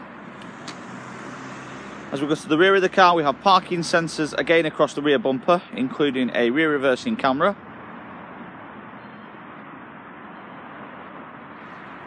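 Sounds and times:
road traffic noise: 0.0 - 12.0
vehicle engine hum: 0.0 - 12.0.

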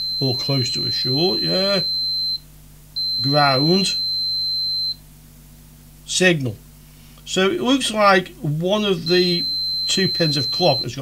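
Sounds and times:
multimeter continuity beep: 0.0 - 2.4, 3.0 - 5.0, 8.6 - 11.0.

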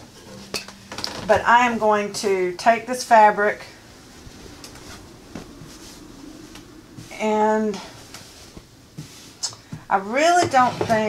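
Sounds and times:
fabric rustling: 3.2 - 9.4.

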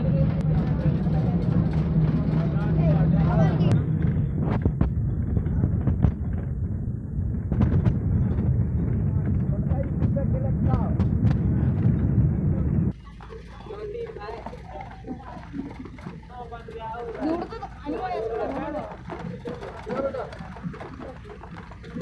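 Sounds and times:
voices: 0.0 - 3.9, 8.1 - 22.0
moving bus rumbling and rattling: 0.0 - 22.0.

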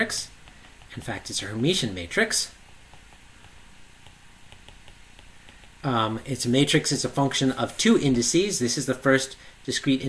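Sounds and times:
room hiss: 0.0 - 10.0
stylus tapping on tablet screen: 0.1 - 6.8.

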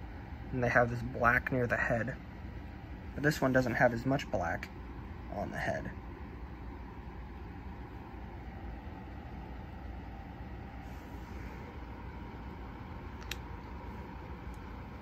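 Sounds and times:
low room noise rumble: 0.0 - 15.0
faint click: 13.2 - 13.4.

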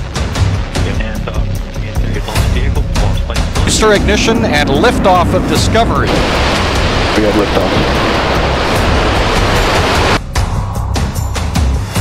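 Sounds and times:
rocket engine roar: 0.7 - 10.2.

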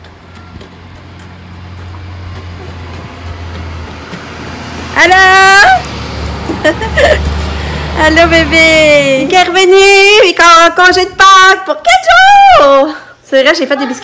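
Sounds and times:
bus engine rumbling: 0.0 - 10.0.

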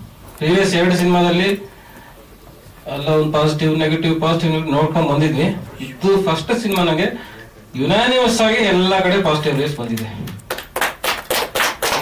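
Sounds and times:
people clapping: 9.9 - 12.0.

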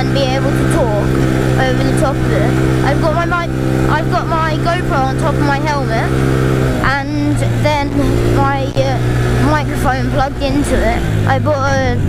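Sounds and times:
person speaking: 0.0 - 6.2, 6.8 - 12.0
quad engine running: 0.0 - 12.0.

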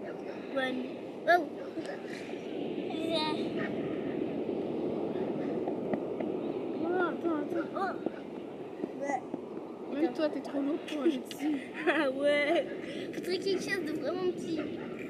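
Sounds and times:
rushing beach ambience: 0.0 - 15.0
girl's high-pitched sounds: 2.9 - 3.5.

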